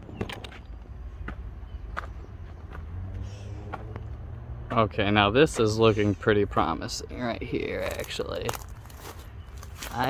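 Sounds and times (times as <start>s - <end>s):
footsteps on dirt trail: 0.2s - 5.8s, 7.6s - 10.0s.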